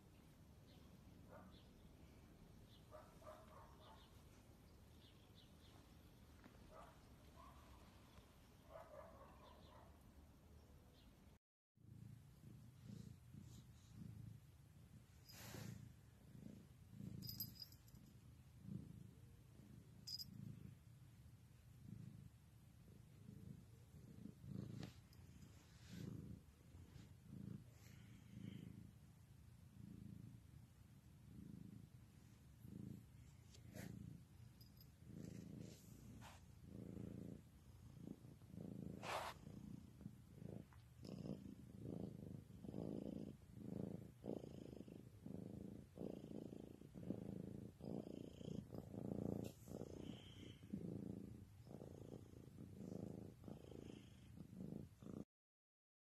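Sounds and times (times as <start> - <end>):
cat purring: 0.0 - 11.1, 11.8 - 55.3.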